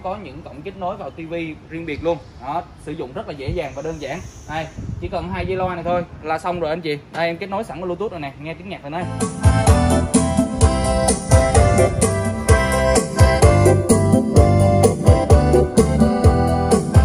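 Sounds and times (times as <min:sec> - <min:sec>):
song over loudspeaker: 0:09.0 - 0:17.0.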